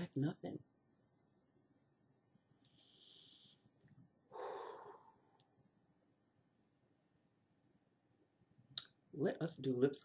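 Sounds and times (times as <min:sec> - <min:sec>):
woman breathing: 0:02.6 - 0:05.4.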